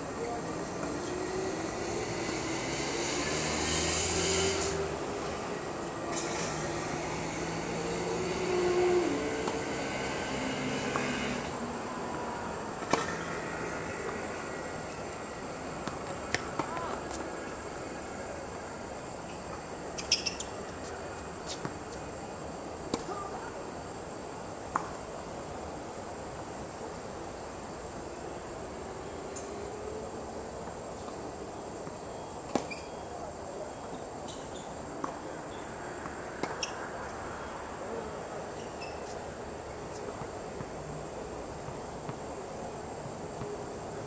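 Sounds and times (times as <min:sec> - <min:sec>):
droning tone: 0:00.0 - 0:18.3
tennis balls struck by rackets: 0:12.1 - 0:14.9, 0:15.7 - 0:17.3, 0:36.0 - 0:36.8.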